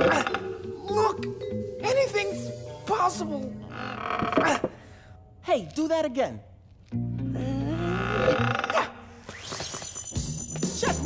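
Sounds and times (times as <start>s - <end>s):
background music: 0.0s - 9.4s, 10.0s - 11.0s.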